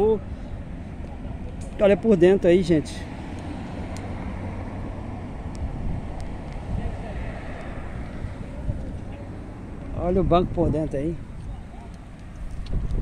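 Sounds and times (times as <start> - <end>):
distant voices murmuring: 0.0 - 12.6
distant traffic: 0.0 - 13.0
wind rumble on microphone: 5.3 - 13.0.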